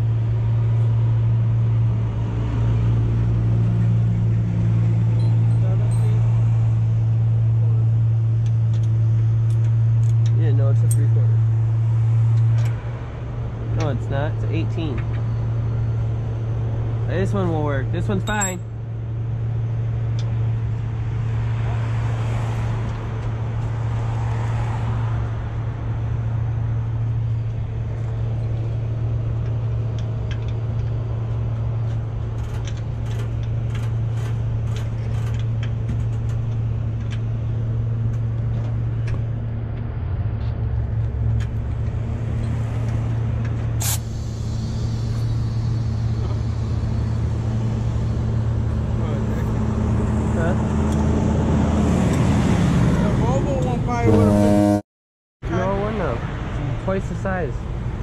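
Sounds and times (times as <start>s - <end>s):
diesel truck engine idling: 43.0s - 51.4s
short hiss: 43.8s - 45.4s.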